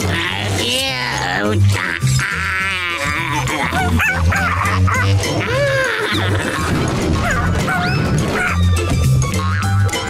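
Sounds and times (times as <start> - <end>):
background music with bass line: 0.0 - 10.0
cartoon creature yipping and barking: 1.9 - 5.8, 7.2 - 8.6.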